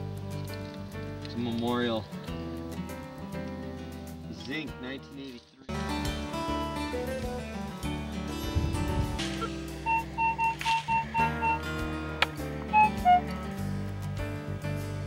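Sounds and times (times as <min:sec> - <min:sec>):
acoustic guitar music: 0:00.0 - 0:15.0
metal detector pinpointer beeps: 0:09.8 - 0:11.7, 0:12.7 - 0:13.2.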